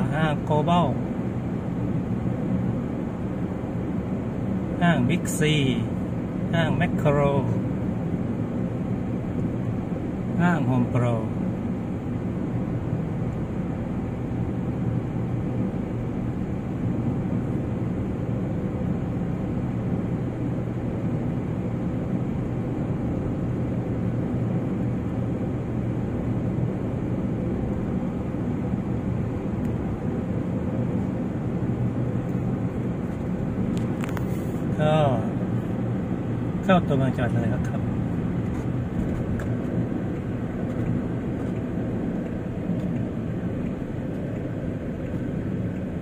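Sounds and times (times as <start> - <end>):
car engine and tyre rumble: 0.0 - 46.0.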